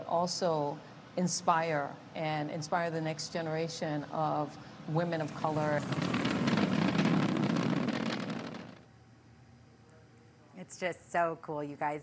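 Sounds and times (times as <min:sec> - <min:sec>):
rocket engine crackling rumble: 0:05.0 - 0:08.9.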